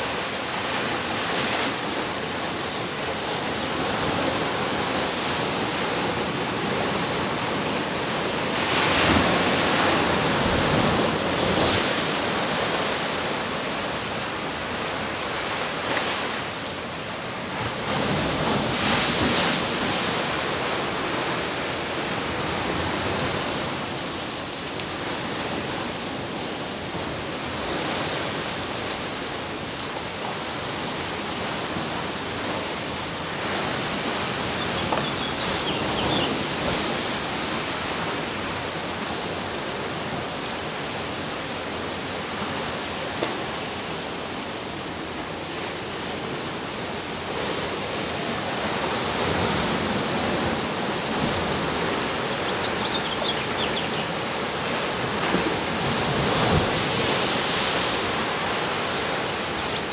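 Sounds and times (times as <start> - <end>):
ocean surf breaking: 0.0 - 59.9.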